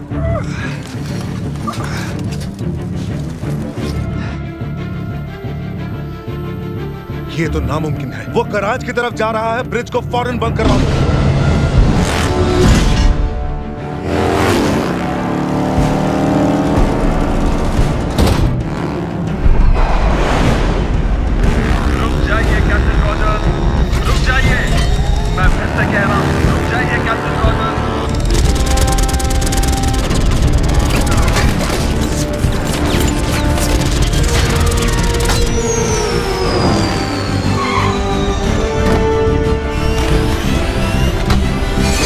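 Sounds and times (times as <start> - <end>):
dramatic score music: 0.0 - 42.0
heavy rumble: 16.8 - 27.0
motorcycle engine: 24.7 - 42.0.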